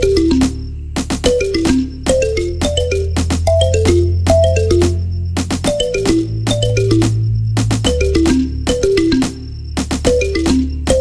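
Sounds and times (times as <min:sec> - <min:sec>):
electronic background music: 0:00.0 - 0:11.0
held bass note: 0:01.9 - 0:09.0.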